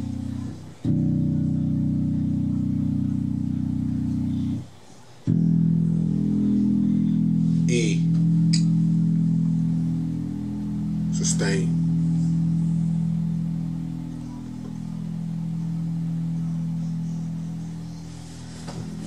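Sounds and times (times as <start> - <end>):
bass guitar notes ringing: 0.0 - 19.0.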